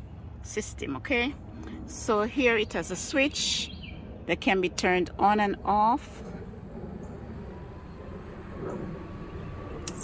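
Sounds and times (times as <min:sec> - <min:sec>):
exhaust fan whirring: 0:00.0 - 0:10.0.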